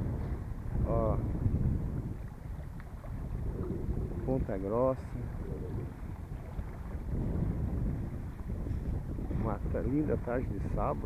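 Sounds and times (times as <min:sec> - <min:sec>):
choppy water washing along hull: 0:00.0 - 0:11.0
wind buffeting microphone: 0:00.0 - 0:11.0.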